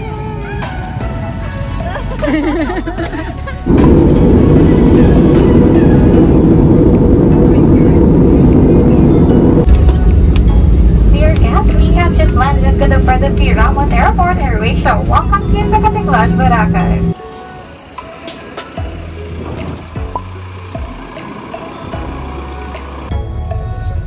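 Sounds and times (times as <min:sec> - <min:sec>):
plane rumbling on runway: 0:00.0 - 0:17.2, 0:18.3 - 0:23.1
engine hum: 0:00.0 - 0:23.9
airliner cabin rush: 0:02.4 - 0:17.1
voices: 0:11.2 - 0:18.6.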